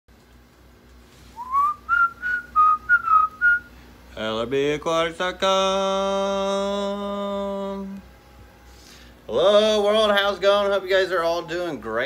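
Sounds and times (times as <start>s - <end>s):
whistled tune: 1.4s - 3.7s.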